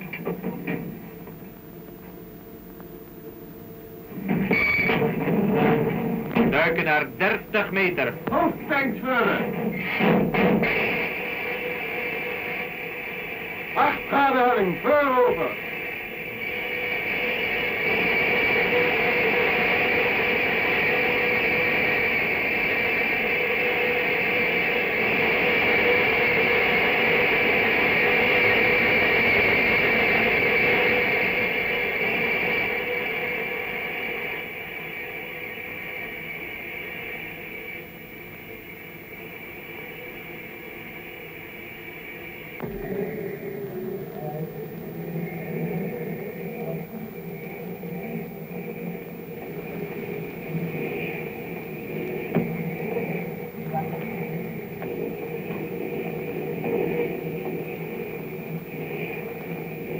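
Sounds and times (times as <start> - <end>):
submarine rushing noise with hum: 4.2 - 59.9.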